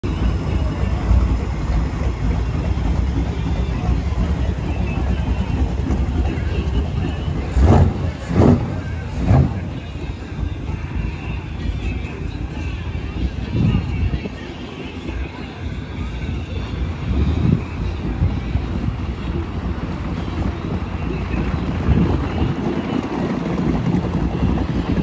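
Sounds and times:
boat engine idling: 0:00.0 - 0:25.0
engine throttle blips: 0:00.0 - 0:25.0.

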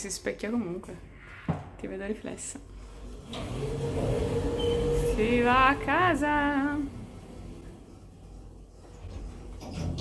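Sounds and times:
automatic sliding doors: 0:02.6 - 0:10.0
lift mechanical hum: 0:02.7 - 0:10.0.

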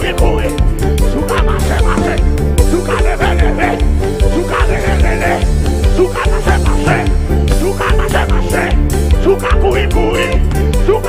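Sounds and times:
man singing into a microphone: 0:00.0 - 0:11.0
praise music with heavy bass: 0:00.0 - 0:11.0.

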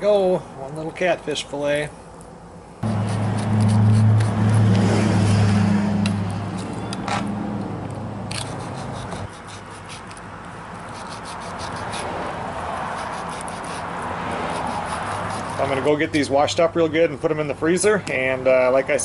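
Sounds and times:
low hum: 0:02.5 - 0:10.0
knife scraping on cutting board: 0:02.8 - 0:04.7, 0:08.3 - 0:10.2, 0:10.9 - 0:12.1, 0:12.8 - 0:15.8.

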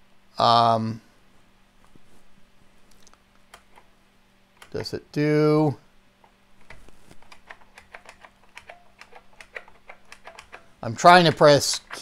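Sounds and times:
keyboard keys clicking: 0:06.7 - 0:10.6.

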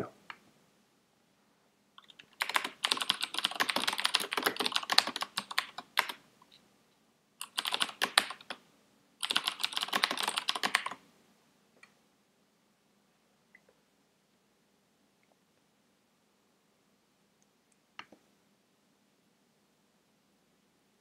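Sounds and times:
computer keyboard typing: 0:02.0 - 0:06.2, 0:07.4 - 0:08.6, 0:09.2 - 0:11.0.

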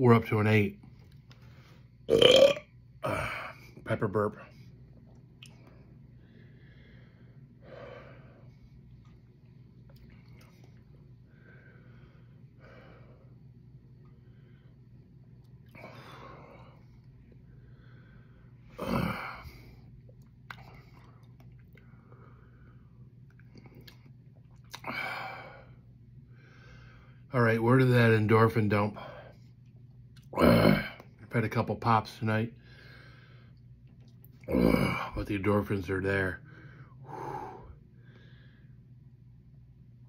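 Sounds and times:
faint low hum: 0:00.0 - 0:40.0
man breathing heavily: 0:05.8 - 0:08.7, 0:11.2 - 0:13.4, 0:32.6 - 0:33.6, 0:36.4 - 0:38.9.

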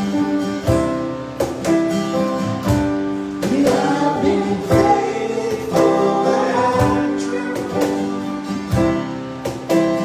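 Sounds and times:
strummed acoustic guitar: 0:00.0 - 0:10.0
man singing: 0:03.4 - 0:08.4.

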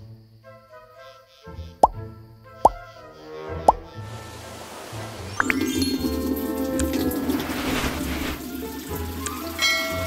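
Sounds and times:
background music: 0:00.0 - 0:10.0
cartoon plop sound effects: 0:01.8 - 0:02.0, 0:02.6 - 0:02.9, 0:03.6 - 0:03.9, 0:05.3 - 0:06.9
rushing hiss of water: 0:04.0 - 0:10.0.

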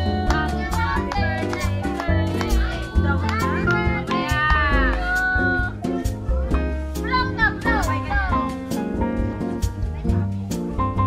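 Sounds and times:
voices: 0:00.0 - 0:08.6
background music with bass line: 0:00.0 - 0:11.0.

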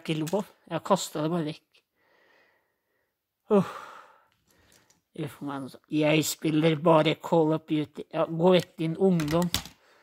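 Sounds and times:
man sighing: 0:03.4 - 0:04.3.

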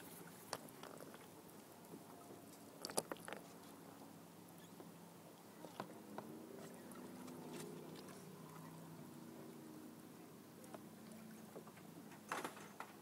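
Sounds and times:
water clicks and drips: 0:02.5 - 0:03.5.

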